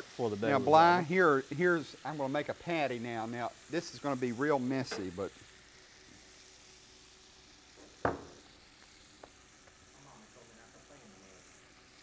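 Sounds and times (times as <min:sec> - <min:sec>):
fish frying in hot oil: 0:00.0 - 0:12.0.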